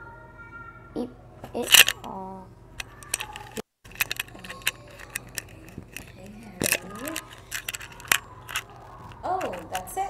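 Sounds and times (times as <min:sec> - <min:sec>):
metal chain clicking and rattling: 0:01.7 - 0:02.1, 0:02.8 - 0:10.0.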